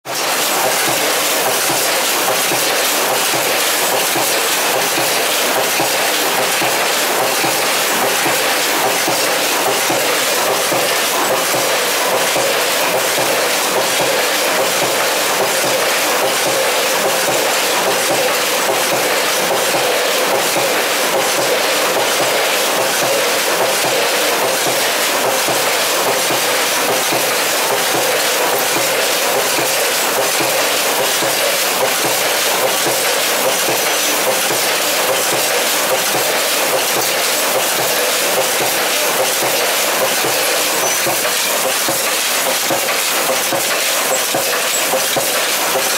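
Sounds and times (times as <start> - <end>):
bagging machine clattering: 0.1 - 45.9.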